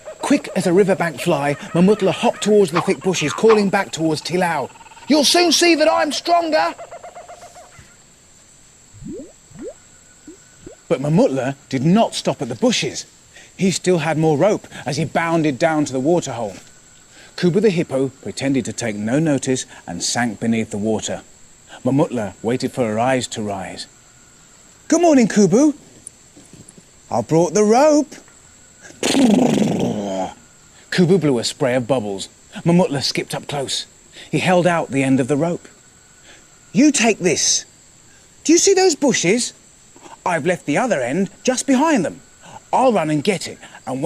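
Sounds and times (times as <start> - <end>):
short rising bloops: 8.9 - 10.9.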